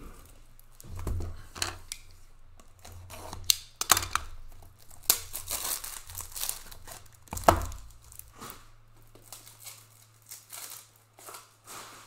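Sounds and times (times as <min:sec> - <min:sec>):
packaging tearing and crinkling: 0:00.0 - 0:12.0.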